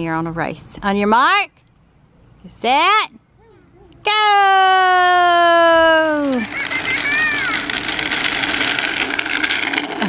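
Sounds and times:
bicycle tyres rolling on asphalt: 5.8 - 10.0
child squealing: 6.2 - 7.7.

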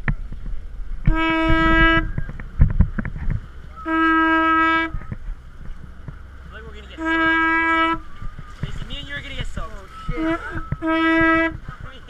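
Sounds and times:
horn blasts: 1.0 - 2.4, 3.7 - 5.1, 6.8 - 11.8.

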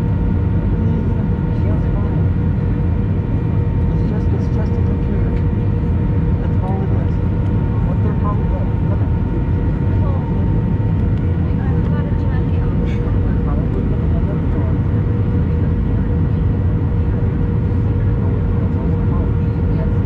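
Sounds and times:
jet engines and airflow drone: 0.0 - 20.0.

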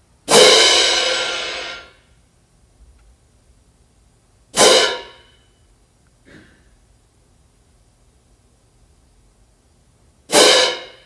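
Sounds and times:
crash cymbals struck and choked: 0.3 - 2.0, 4.6 - 5.4, 10.3 - 11.0.

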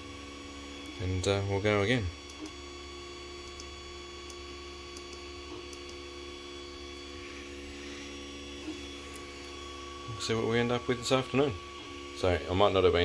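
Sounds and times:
three d printer humming: 0.0 - 13.0.

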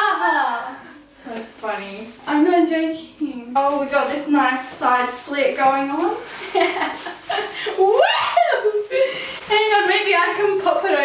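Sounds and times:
women laughing: 6.4 - 9.4.

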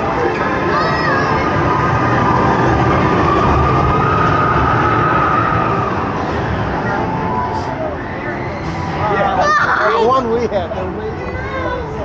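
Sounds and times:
roller coaster train rumbling: 0.0 - 12.0.

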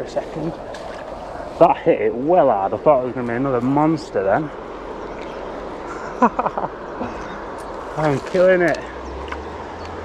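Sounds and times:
river flowing: 0.0 - 10.0
man laughing: 5.8 - 7.4.

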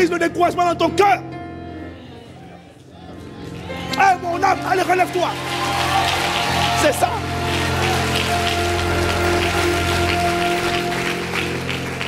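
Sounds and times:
held keyboard chords: 0.6 - 12.0
congregation applause: 3.5 - 12.0.

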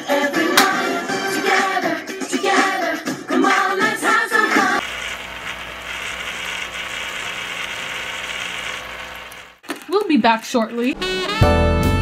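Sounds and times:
small water pumps whirring: 4.8 - 10.1.

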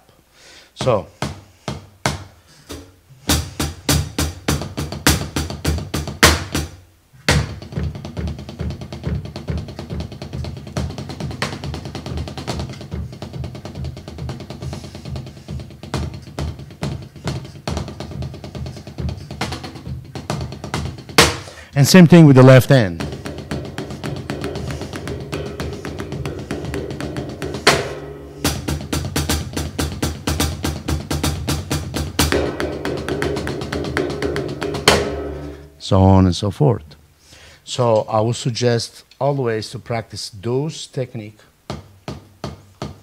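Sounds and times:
snare drum roll: 2.7 - 35.8.

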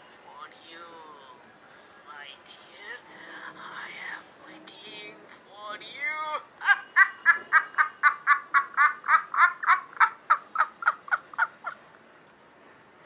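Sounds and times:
high-pitched evil cackling laugh: 6.6 - 11.8.

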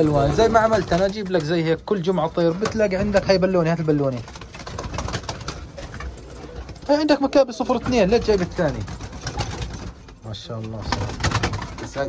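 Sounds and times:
wings flapping and rustling: 0.0 - 12.0.

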